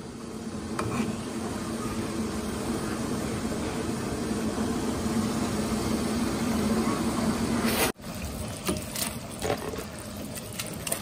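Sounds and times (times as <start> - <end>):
soup cooking on stove: 0.0 - 11.0.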